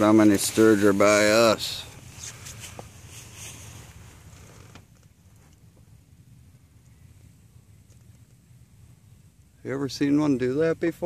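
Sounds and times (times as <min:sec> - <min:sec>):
soft ticks and rustles: 0:00.0 - 0:06.0, 0:07.8 - 0:08.4
faint low rumble and hiss: 0:00.0 - 0:11.0.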